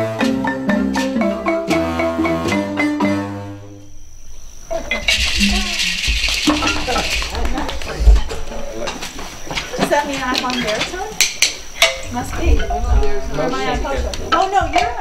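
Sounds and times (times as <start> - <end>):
hissing rattle: 3.9 - 13.3
people chatting indistinctly: 4.6 - 15.0
wooden mallets knocking and clicking: 4.9 - 13.4.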